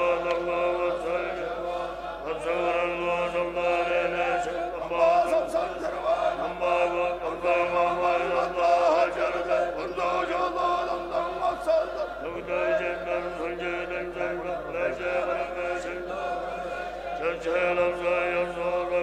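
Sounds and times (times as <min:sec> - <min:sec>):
monks chanting in unison: 0:00.0 - 0:19.0.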